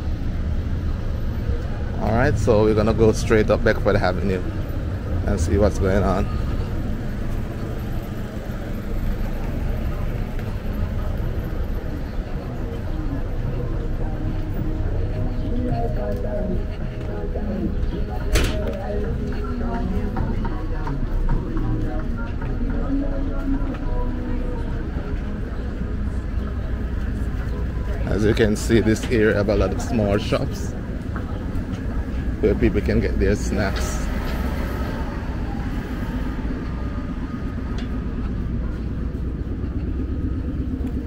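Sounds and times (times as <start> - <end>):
passers-by talking: 0.0 - 41.0
traffic rumble: 0.0 - 41.0.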